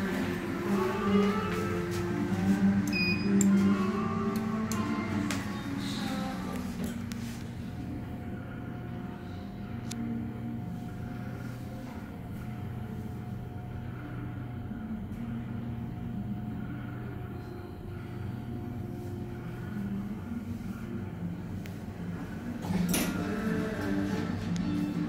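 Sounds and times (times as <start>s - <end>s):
elevator rumble and hum: 0.0s - 25.0s
faint steady whine: 0.0s - 25.0s.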